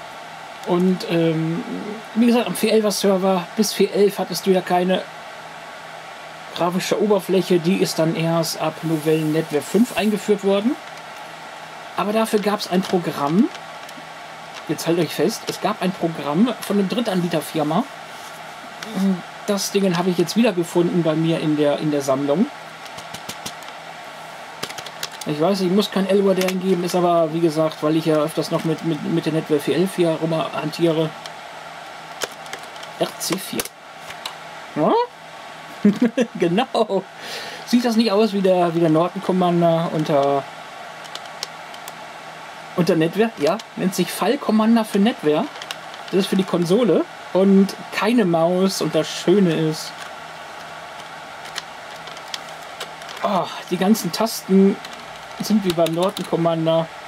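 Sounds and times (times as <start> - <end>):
steady hum: 0.0 - 57.0.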